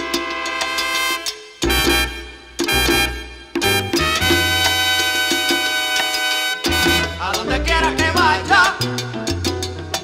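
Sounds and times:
sharp percussion strokes: 0.0s - 7.5s
salsa band instrumental: 0.0s - 10.0s
deep bass line: 1.1s - 5.0s, 6.7s - 10.0s.

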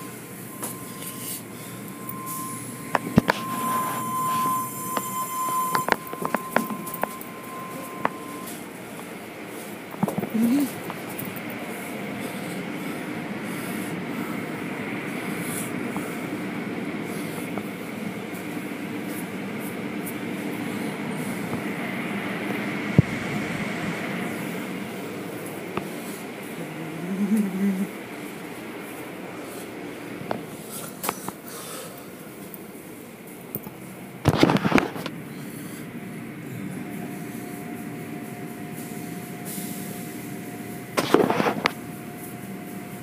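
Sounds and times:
car wash machinery rumble: 0.0s - 43.0s
thin steady whine: 0.0s - 43.0s.

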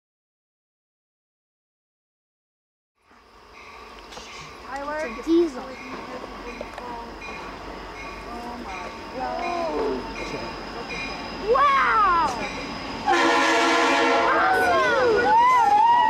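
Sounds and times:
locomotive air horn: 13.0s - 14.9s.

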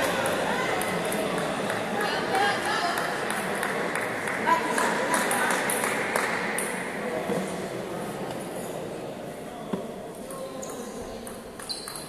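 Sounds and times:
voices in background: 0.0s - 12.0s.

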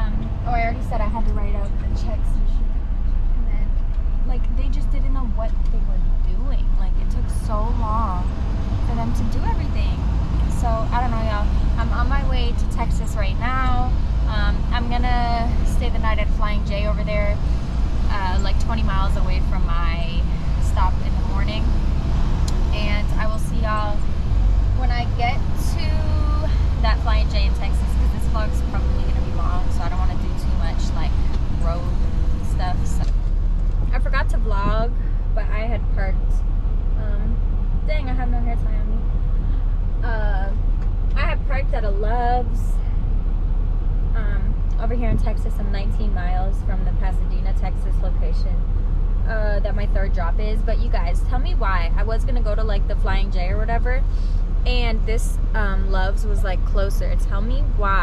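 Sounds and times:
woman talking: 0.0s - 2.6s, 3.4s - 21.8s, 22.5s - 24.1s, 24.8s - 33.1s, 33.9s - 36.4s, 37.0s - 39.1s, 40.0s - 40.6s, 41.2s - 43.0s, 44.2s - 48.7s, 49.3s - 58.0s
diesel engine rumble: 0.0s - 58.0s
low hum: 0.0s - 58.0s.

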